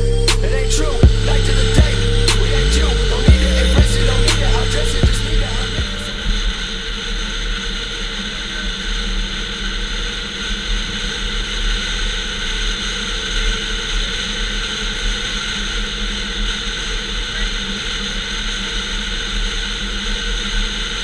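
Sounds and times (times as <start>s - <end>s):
car road noise at speed: 0.0s - 8.3s.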